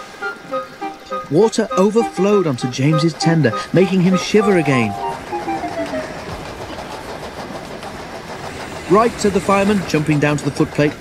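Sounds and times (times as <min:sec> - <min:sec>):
train carriages rolling on rails: 0:00.0 - 0:11.0.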